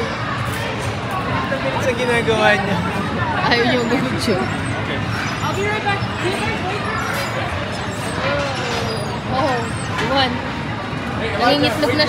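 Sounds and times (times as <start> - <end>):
indistinct crowd chatter: 0.0 - 12.0.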